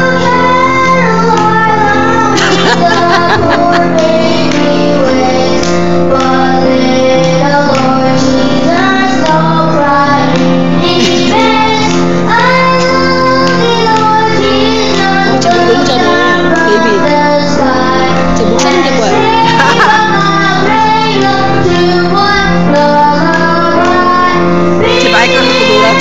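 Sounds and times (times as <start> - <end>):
held backing notes: 0.0 - 7.2, 8.1 - 26.0
children singing a carol: 0.0 - 26.0.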